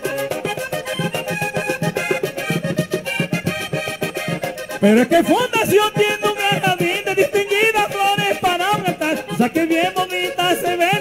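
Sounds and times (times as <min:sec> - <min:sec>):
button accordion playing: 0:00.0 - 0:11.0
fast percussion beat: 0:00.0 - 0:11.0.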